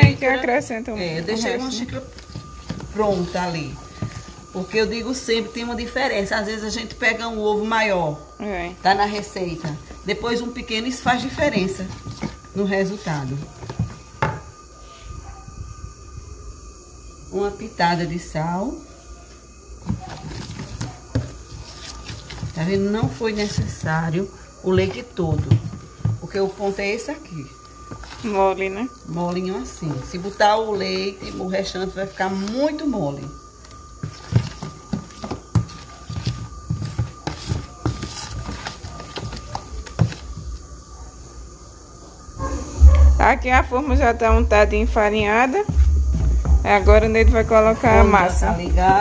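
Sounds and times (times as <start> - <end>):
wooden spoon stirring batter: 1.1 - 5.2, 8.9 - 14.4, 19.8 - 32.8, 33.6 - 40.6
spoon scraping plastic bowl: 34.0 - 40.4.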